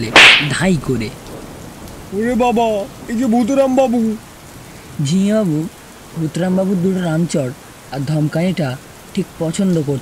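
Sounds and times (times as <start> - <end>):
steady rain: 0.0 - 10.0
person's voice: 5.0 - 10.0.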